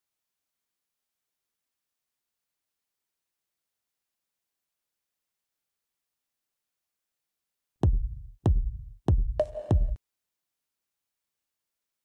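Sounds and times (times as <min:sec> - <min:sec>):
deep bass drum hits: 0:07.8 - 0:10.0.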